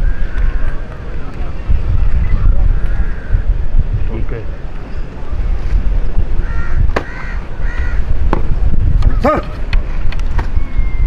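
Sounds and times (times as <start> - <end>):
steady low rumble: 0.0 - 10.2
crow-like caws: 6.4 - 8.1.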